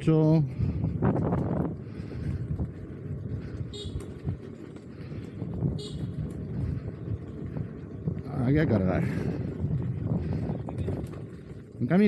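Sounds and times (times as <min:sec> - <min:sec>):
road traffic: 0:00.0 - 0:12.0
wheel rumbling on gravel: 0:00.0 - 0:12.0.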